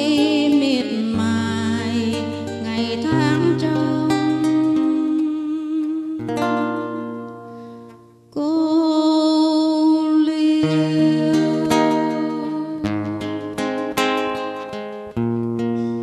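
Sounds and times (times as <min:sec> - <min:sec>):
woman singing with vibrato: 0:00.0 - 0:07.4, 0:08.4 - 0:13.9
fingerpicked acoustic guitar: 0:00.0 - 0:16.0.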